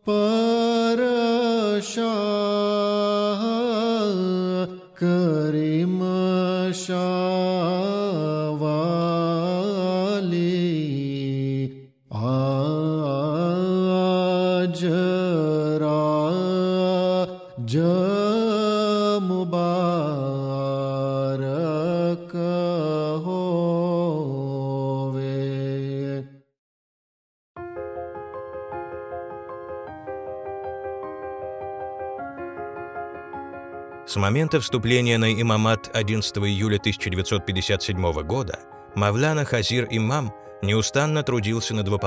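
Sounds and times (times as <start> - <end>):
man chanting devotional melody: 0.0 - 26.3, 34.1 - 42.0.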